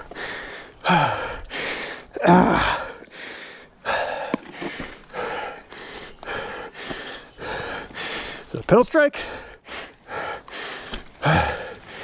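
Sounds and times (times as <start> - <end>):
man breathing hard: 0.0 - 12.0.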